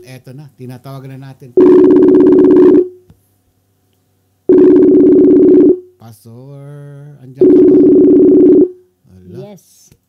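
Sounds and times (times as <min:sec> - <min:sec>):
phone ringback tone: 0:01.6 - 0:03.0, 0:04.5 - 0:05.9, 0:07.4 - 0:08.8.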